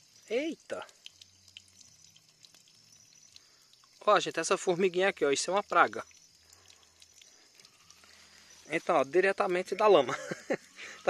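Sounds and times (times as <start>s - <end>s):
water dripping: 0.0s - 11.0s
water trickling: 0.0s - 11.0s.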